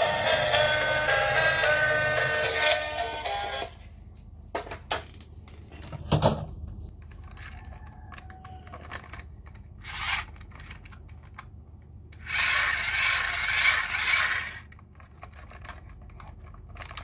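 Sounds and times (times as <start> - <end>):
hands scraping plastic toy: 7.0 - 11.5.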